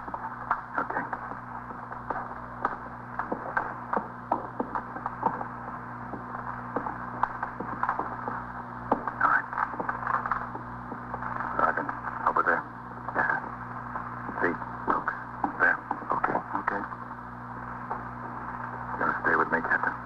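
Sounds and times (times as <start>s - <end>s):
steady low hum: 0.0s - 20.0s
indistinct radio voices: 0.7s - 20.0s.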